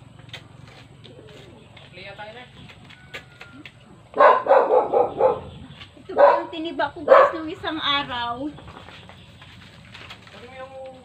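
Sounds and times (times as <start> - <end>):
dog barking: 4.2 - 5.5, 6.1 - 7.5.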